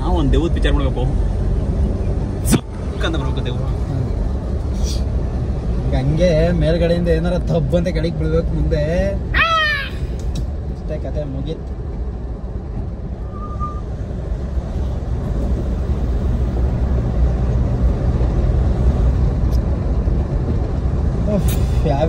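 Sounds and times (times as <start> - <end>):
motorcycle engine and road noise: 0.0 - 22.0.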